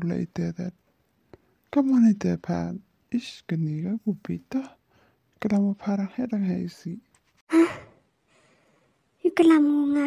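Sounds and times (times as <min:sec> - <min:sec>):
person breathy sigh: 0:07.5 - 0:08.8.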